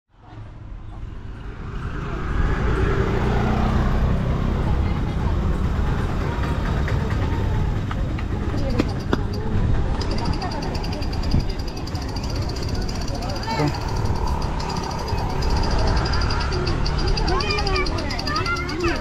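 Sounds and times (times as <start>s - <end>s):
traffic noise: 0.1s - 19.0s
people chattering: 1.1s - 19.0s.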